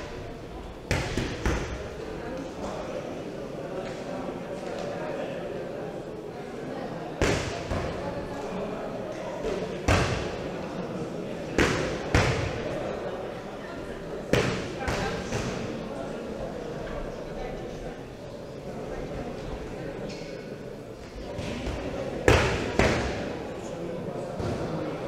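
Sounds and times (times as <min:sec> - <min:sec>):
murmur of crowd chatter: 0:00.0 - 0:25.0.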